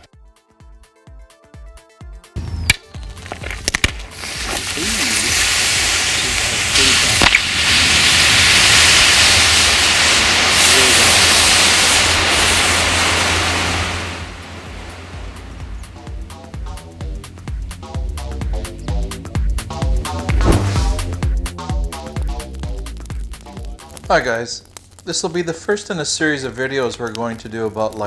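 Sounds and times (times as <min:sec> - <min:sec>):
battery sharp cracks: 0:02.7 - 0:04.8, 0:06.7 - 0:08.1, 0:22.6 - 0:25.4
battery venting gas hiss: 0:03.0 - 0:28.0.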